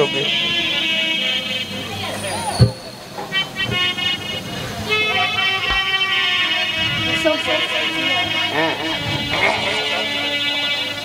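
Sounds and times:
harmonium chords: 0:00.0 - 0:11.0
deep thump: 0:02.6 - 0:03.0.

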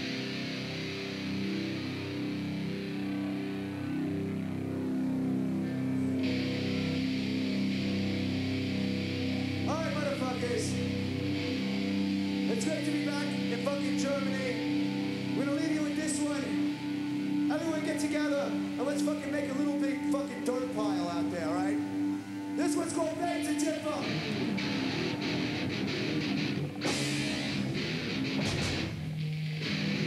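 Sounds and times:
metal band droning chord: 0:00.0 - 0:30.0.

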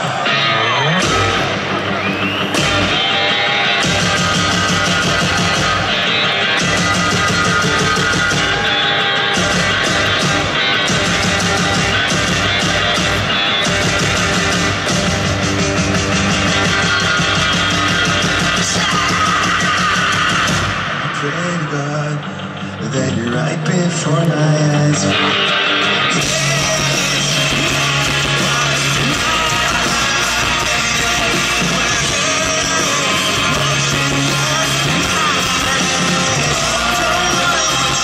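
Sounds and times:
bass guitar: 0:00.0 - 0:38.0
electric guitar: 0:00.0 - 0:38.0
drum kit pounding: 0:01.0 - 0:21.4, 0:26.0 - 0:38.0.

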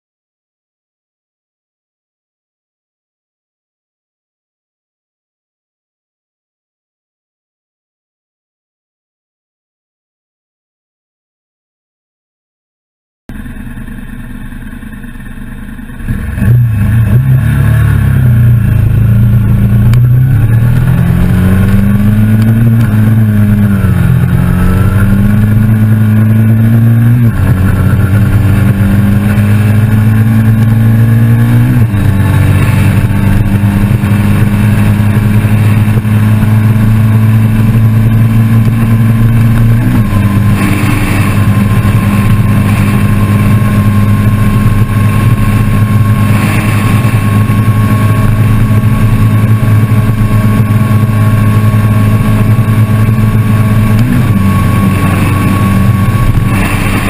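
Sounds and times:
motorcycle engine at full throttle: 0:13.3 - 0:57.0.

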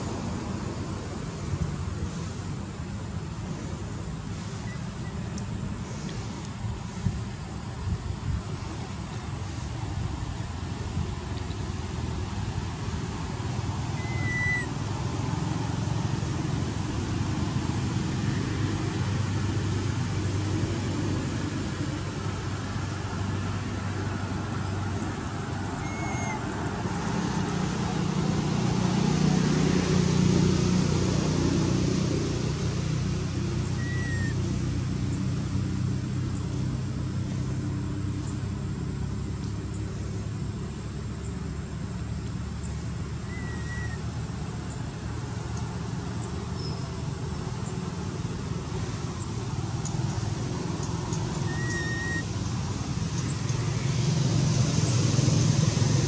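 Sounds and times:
low rumble of distant traffic: 0:00.0 - 0:56.0.

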